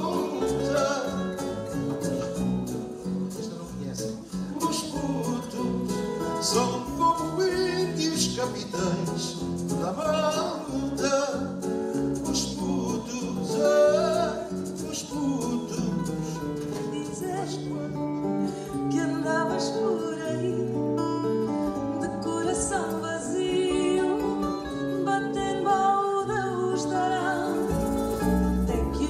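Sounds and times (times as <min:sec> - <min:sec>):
plucked guitar notes: 0:00.0 - 0:14.7
man singing with vibrato: 0:00.0 - 0:21.0.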